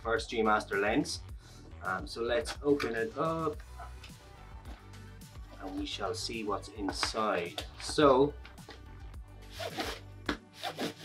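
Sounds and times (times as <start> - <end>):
soft background music: 0.0 - 11.0
cardboard box rubbing and scraping: 9.5 - 11.0.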